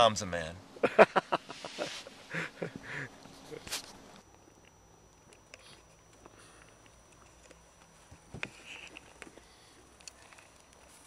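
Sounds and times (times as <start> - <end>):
man laughing: 0.8 - 3.7.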